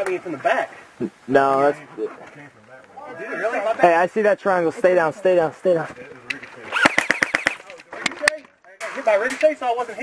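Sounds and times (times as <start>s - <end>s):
airsoft rifle shots: 6.7s - 7.8s.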